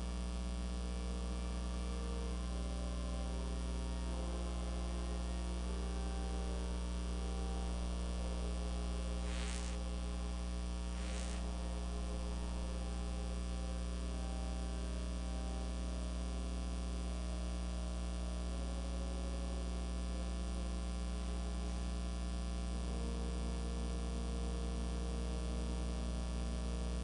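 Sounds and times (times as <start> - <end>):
faint held tones: 0.0 - 21.9
electrical mains hum: 0.0 - 27.0.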